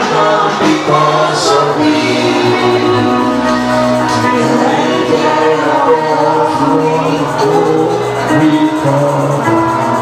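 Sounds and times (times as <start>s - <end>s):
gospel voices singing together: 0.0s - 10.0s
steady bass: 0.0s - 10.0s.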